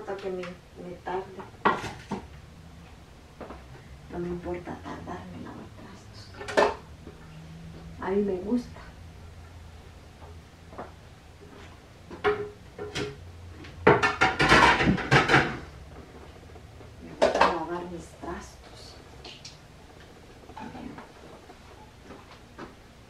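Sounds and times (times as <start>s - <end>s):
dishes and cutlery clattering: 13.9s - 15.7s.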